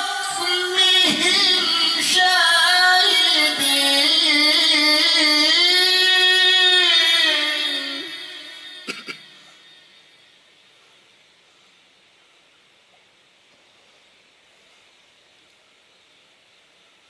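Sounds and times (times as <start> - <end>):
man chanting into microphone: 0.0 - 8.8.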